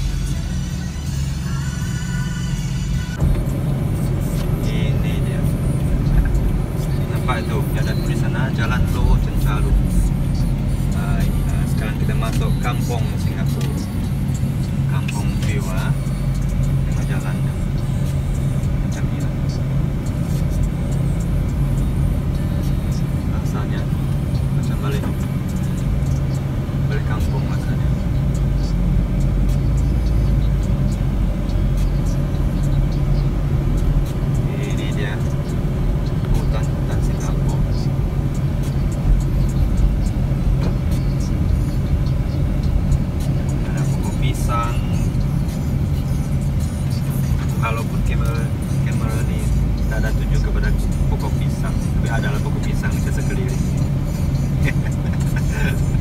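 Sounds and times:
engine and road hum in car: 0.0 - 56.0.

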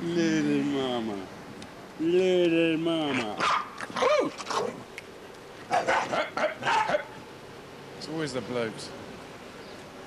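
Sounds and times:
dog barking: 3.4 - 4.8, 5.7 - 7.2.

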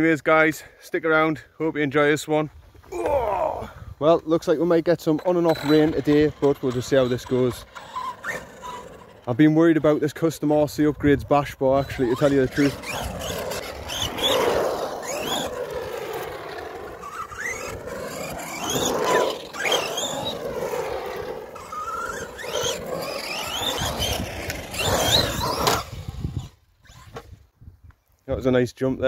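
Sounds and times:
electric motor whining: 5.2 - 9.3, 11.8 - 27.4
tyres scrubbing on concrete: 11.8 - 25.9.

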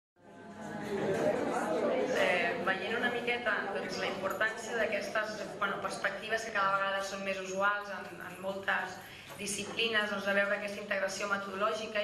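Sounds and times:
murmur of many people talking: 0.2 - 12.0.

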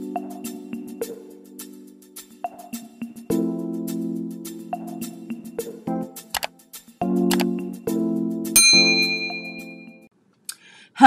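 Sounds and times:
bright bell ding: 8.6 - 9.9.

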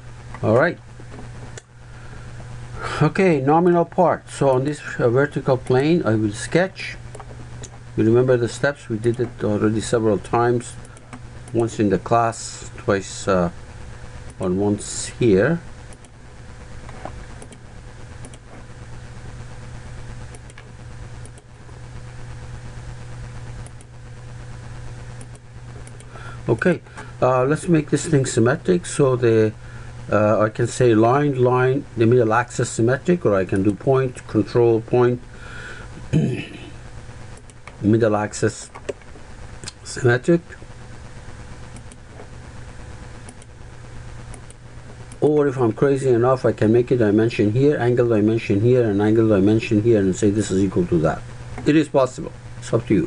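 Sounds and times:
background hiss: 0.0 - 53.0
low mechanical hum: 0.0 - 53.0
computer mouse clicks: 17.0 - 17.6, 18.2 - 18.4.

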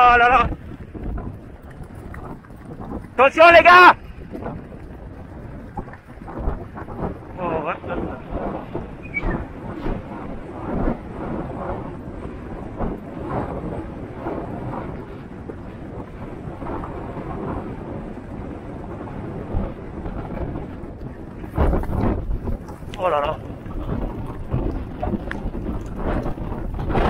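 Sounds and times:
wind on microphone: 0.0 - 27.0
galloping horse hoof thuds: 0.5 - 11.1, 20.0 - 27.0.

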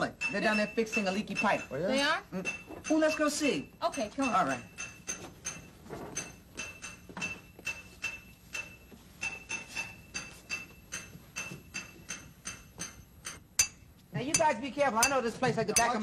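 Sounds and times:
metal tools clanking on pipe: 0.0 - 16.0.

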